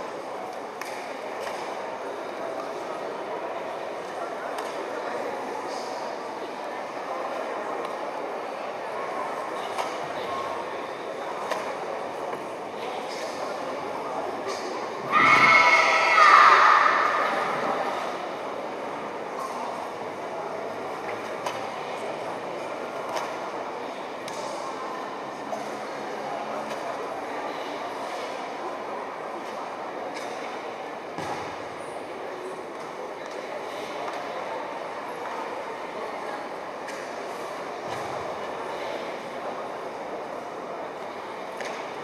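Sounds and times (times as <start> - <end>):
distant crowd chatter: 0.0 - 42.0.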